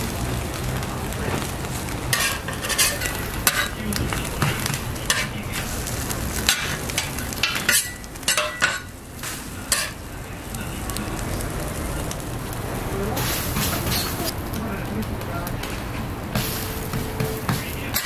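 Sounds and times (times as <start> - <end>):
food sizzling on griddle: 0.0 - 18.0
metal spatula scraping griddle: 1.3 - 10.0, 13.2 - 14.3, 15.6 - 18.0.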